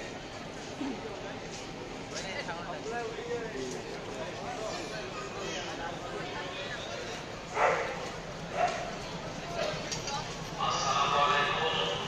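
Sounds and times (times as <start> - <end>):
train coaches rumbling past: 0.0 - 12.0
people talking: 0.7 - 7.4, 8.6 - 12.0.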